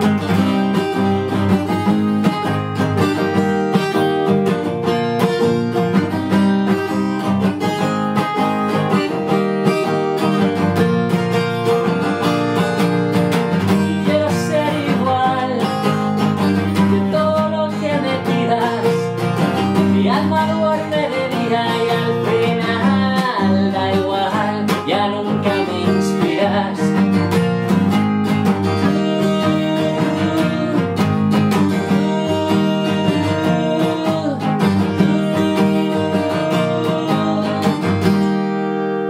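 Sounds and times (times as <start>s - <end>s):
acoustic guitar strumming chords: 0.0s - 39.0s
man singing: 13.6s - 27.4s, 28.5s - 38.4s.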